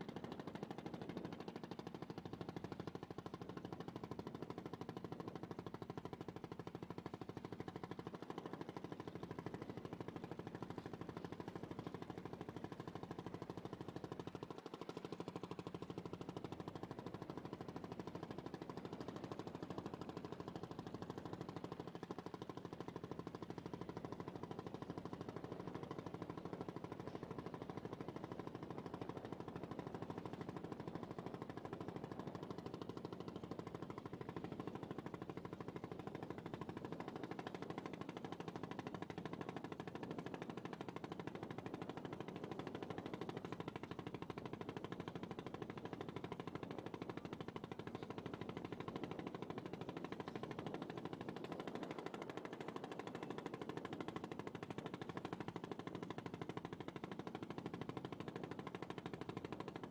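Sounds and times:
boat engine running: 1.0s - 16.7s, 22.4s - 59.7s.

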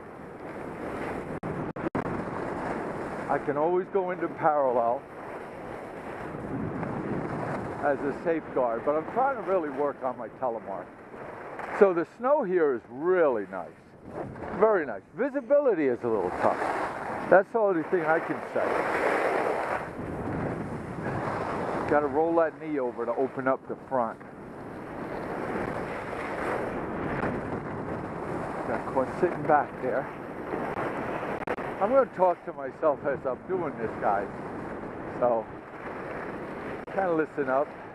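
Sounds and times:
wind on microphone: 0.0s - 32.1s, 32.8s - 37.9s
skis scraping over snow: 0.5s - 37.8s.

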